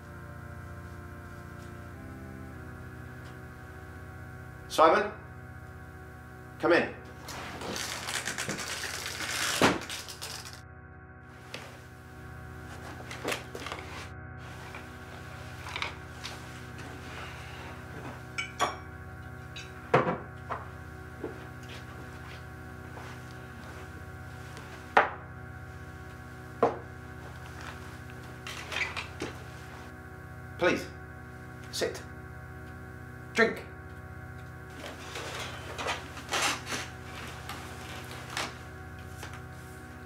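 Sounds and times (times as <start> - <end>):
glasses and bottle clinking: 18.4 - 18.8.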